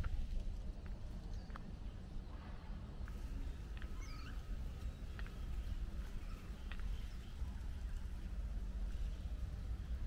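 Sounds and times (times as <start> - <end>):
small birds chirping: 0.0 - 2.4, 3.0 - 10.0
high gliding bird calls: 3.8 - 7.4.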